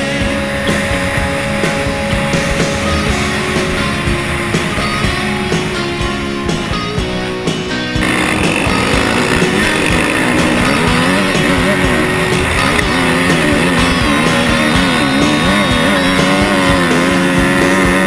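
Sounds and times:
dirt bike engine revving: 0:00.0 - 0:18.0
rock music with guitar: 0:00.0 - 0:18.0.

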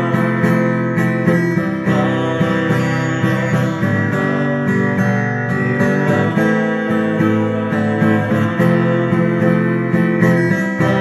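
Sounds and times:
acoustic guitar strummed: 0:00.0 - 0:11.0.

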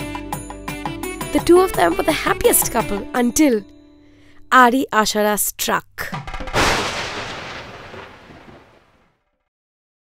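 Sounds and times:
thunderclap: 0:06.2 - 0:09.2.

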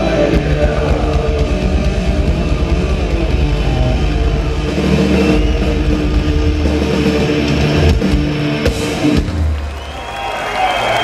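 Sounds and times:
distorted electric guitar chords: 0:00.0 - 0:09.4
punk rock band playing: 0:00.0 - 0:09.6
drums: 0:00.0 - 0:11.0.

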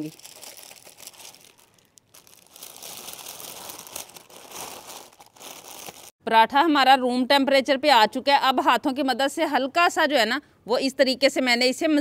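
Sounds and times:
plastic bag crinkling: 0:00.0 - 0:06.2.

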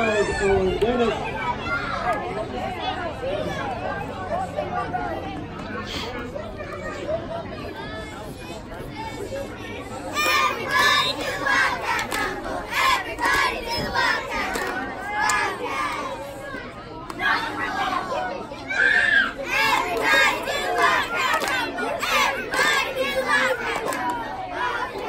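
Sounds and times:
crowd shouting and cheering: 0:00.0 - 0:25.0.

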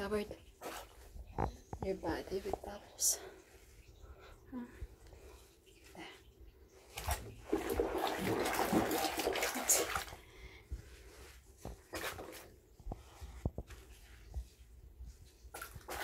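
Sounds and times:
bathwater sloshing and splashing: 0:00.0 - 0:16.0.

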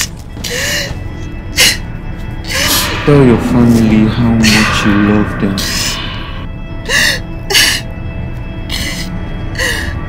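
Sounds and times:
soft background music: 0:00.0 - 0:10.0
woman crying: 0:06.8 - 0:07.9, 0:08.7 - 0:10.0.

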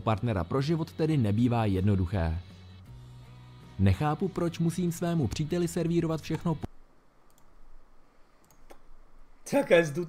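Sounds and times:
computer mouse clicks: 0:07.2 - 0:07.6, 0:08.4 - 0:08.9.

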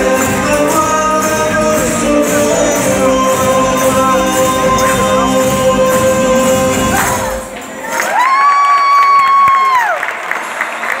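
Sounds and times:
folk band music: 0:00.0 - 0:08.0
crowd cheering: 0:06.8 - 0:11.0.

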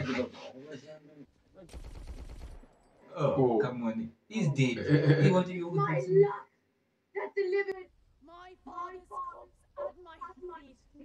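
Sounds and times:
automatic gunfire: 0:01.7 - 0:02.7.

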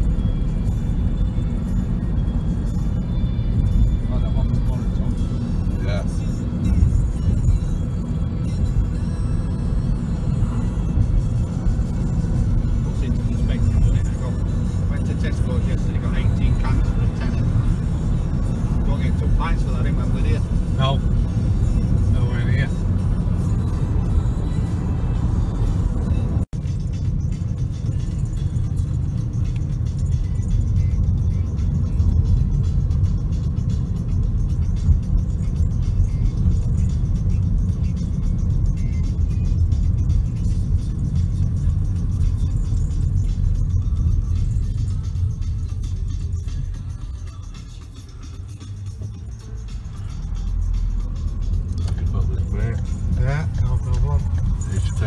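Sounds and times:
music: 0:00.0 - 0:55.0
road and engine rumble: 0:00.0 - 0:55.0.

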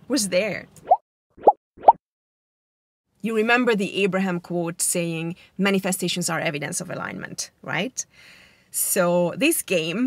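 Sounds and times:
rising plop sound effects: 0:00.8 - 0:02.0.

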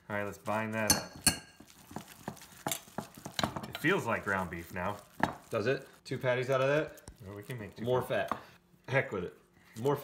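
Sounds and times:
spoon clinking against glass bowl: 0:00.8 - 0:01.6.

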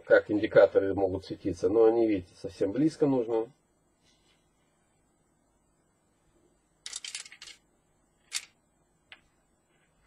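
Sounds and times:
small parts clicking and rattling: 0:06.8 - 0:07.6, 0:08.2 - 0:08.6.

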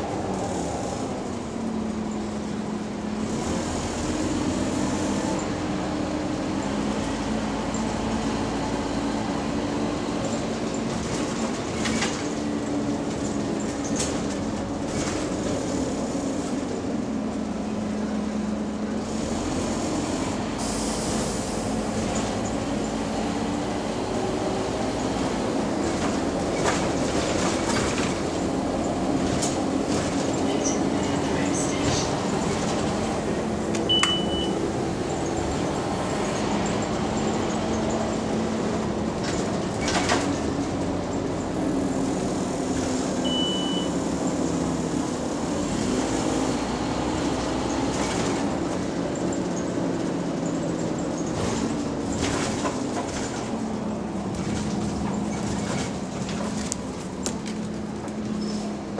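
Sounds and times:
bus drivetrain whine: 0:00.0 - 0:58.9
bus body rattles and knocks: 0:09.3 - 0:20.4, 0:21.8 - 0:58.9.

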